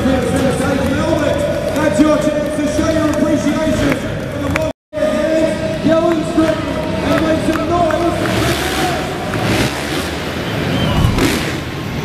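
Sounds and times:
dirt bike engine revving: 0:06.8 - 0:12.0.

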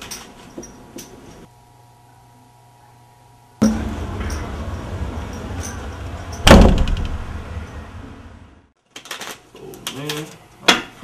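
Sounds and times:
door slamming shut: 0:03.6 - 0:07.9.

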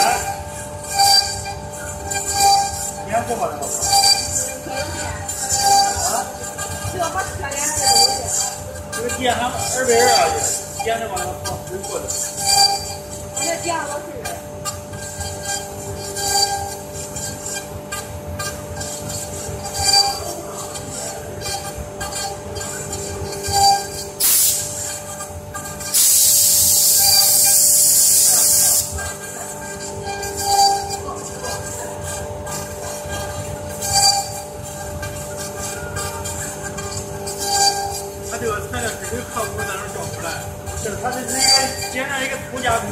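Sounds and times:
wood router whining and carving: 0:00.0 - 0:24.2.

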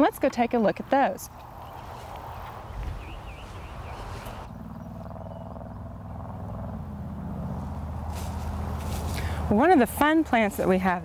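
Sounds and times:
low steady humming drone: 0:00.0 - 0:11.0.

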